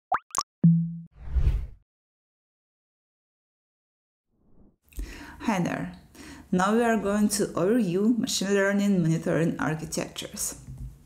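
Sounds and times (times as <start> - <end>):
rising synthetic pops: 0.1 - 1.1.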